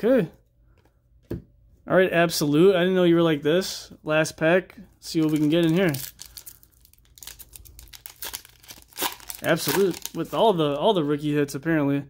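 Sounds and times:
plastic wrapper crinkling and tearing: 0:05.0 - 0:11.0.

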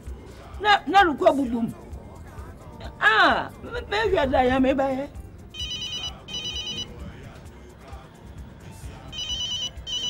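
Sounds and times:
telephone ringing: 0:05.6 - 0:07.0, 0:09.1 - 0:10.0.

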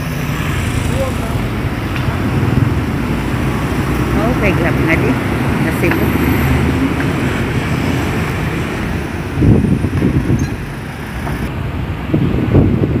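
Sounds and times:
street traffic hum: 0:00.0 - 0:13.0
wind buffeting microphone: 0:01.3 - 0:13.0.

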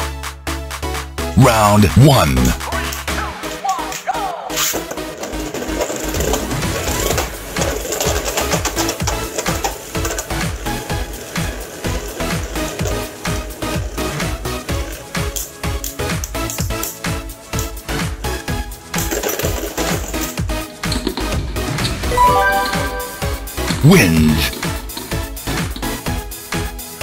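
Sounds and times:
electronic music with beat: 0:22.2 - 0:23.8.

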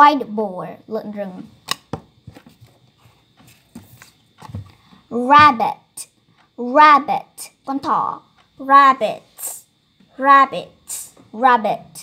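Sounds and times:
flashcards tapping and clicking: 0:01.6 - 0:04.9.

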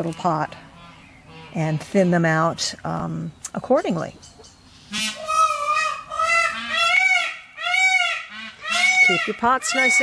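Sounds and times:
goose honking: 0:04.9 - 0:10.0.

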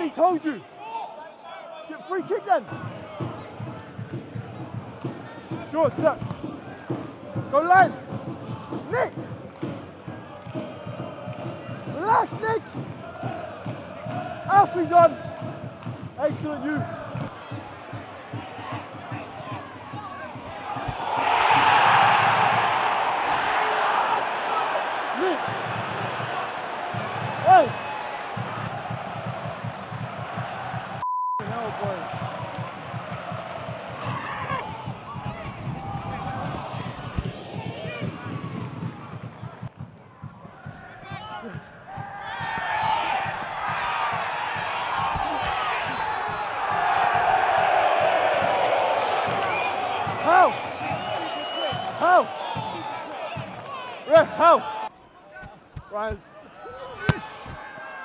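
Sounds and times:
stadium crowd noise: 0:00.0 - 0:58.0
people shouting: 0:16.6 - 0:38.6, 0:40.8 - 0:58.0
ball being kicked: 0:20.4 - 0:21.6, 0:57.0 - 0:57.8.

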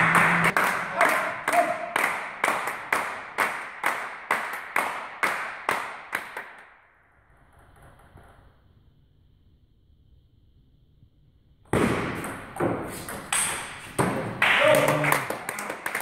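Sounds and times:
spectators clapping in unison: 0:00.0 - 0:06.7, 0:14.3 - 0:16.0.

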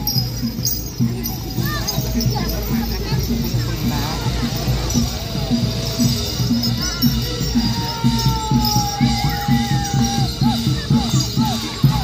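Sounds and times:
percussion ensemble quick beat: 0:00.0 - 0:12.0.

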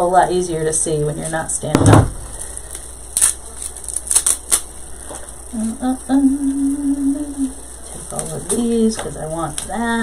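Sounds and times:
plastic packaging rustling: 0:02.0 - 0:05.5, 0:07.4 - 0:10.0.

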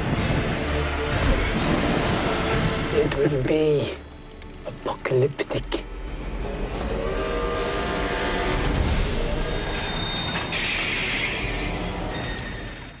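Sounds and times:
train running: 0:00.0 - 0:13.0
high squealing tones: 0:07.2 - 0:13.0.

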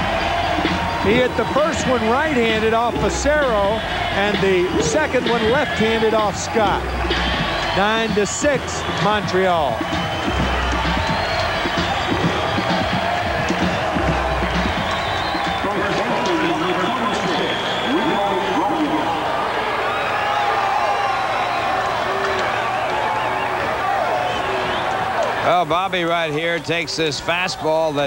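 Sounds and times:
crowd cheering: 0:00.0 - 0:28.0.

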